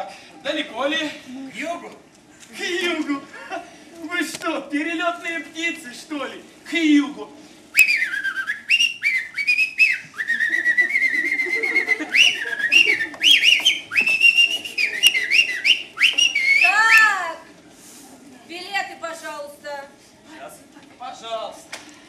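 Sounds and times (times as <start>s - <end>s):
person whistling a tune: 7.8s - 17.1s.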